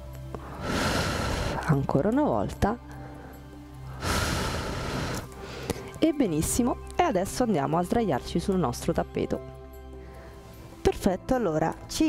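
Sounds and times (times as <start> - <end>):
faint background music: 0.0 - 12.0
breath exhale on microphone: 0.4 - 1.6, 3.9 - 5.8.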